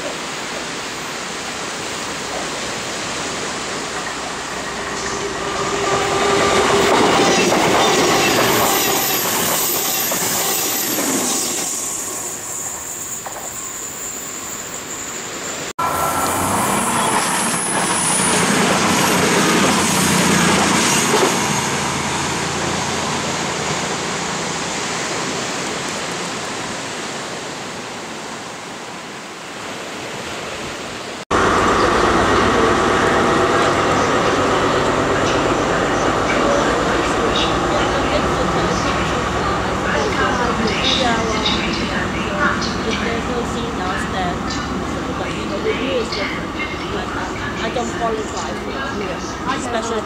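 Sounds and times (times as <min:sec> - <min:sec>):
diesel train rushing: 0:00.0 - 0:30.2, 0:31.3 - 0:50.0
sea waves washing: 0:15.2 - 0:50.0.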